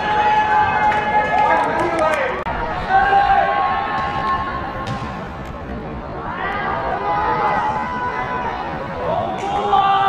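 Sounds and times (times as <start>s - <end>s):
hubbub of voices: 0.0s - 10.0s
people shouting and cheering: 0.0s - 10.0s.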